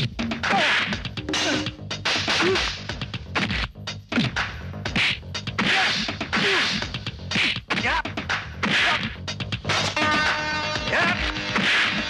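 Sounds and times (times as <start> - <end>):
whooshing punch and slap hits: 0.5 - 7.9, 8.6 - 9.9, 11.5 - 12.0.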